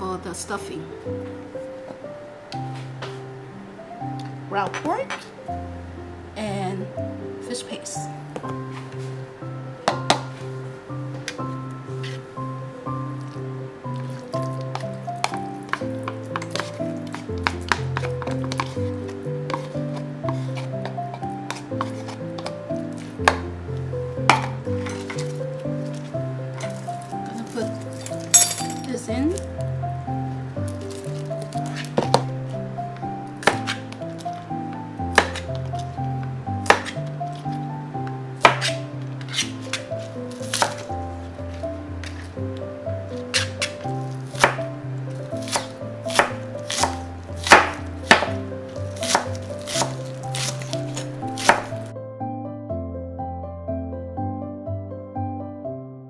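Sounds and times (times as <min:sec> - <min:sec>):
background music: 0:00.0 - 0:56.0
knife chopping on plastic board: 0:14.6 - 0:22.6, 0:23.2 - 0:23.5, 0:24.3 - 0:25.3, 0:33.4 - 0:33.8, 0:35.1 - 0:35.8, 0:36.6 - 0:37.0, 0:38.4 - 0:40.9, 0:44.4 - 0:44.7, 0:45.4 - 0:48.4, 0:49.0 - 0:51.8.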